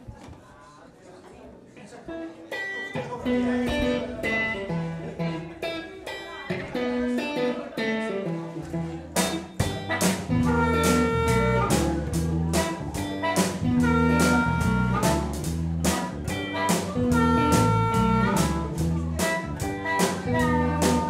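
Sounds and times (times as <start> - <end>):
electric guitar blues line: 2.1 - 21.0
drums playing: 9.1 - 21.0.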